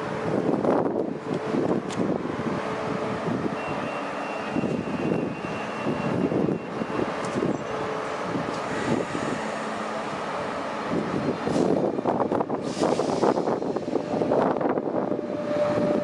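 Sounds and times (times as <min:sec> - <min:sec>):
electric train hum and rumble: 0:00.0 - 0:16.0.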